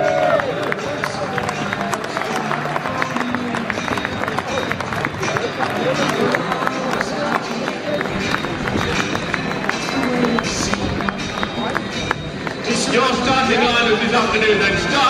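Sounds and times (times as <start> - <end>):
sharp hand claps: 0.0 - 13.6
music over stadium loudspeakers: 0.0 - 15.0
spectators talking: 0.0 - 15.0.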